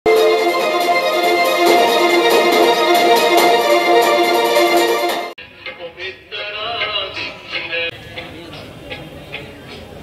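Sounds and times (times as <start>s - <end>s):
man singing: 5.8s - 7.9s.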